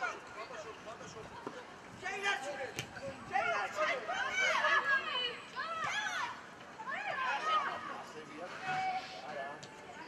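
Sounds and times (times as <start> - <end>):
young players shouting: 3.3 - 9.1.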